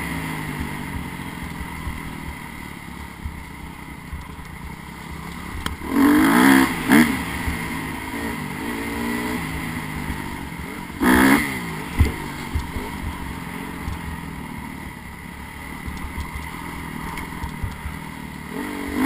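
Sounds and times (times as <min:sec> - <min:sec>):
dirt bike engine revving: 0:04.6 - 0:19.0.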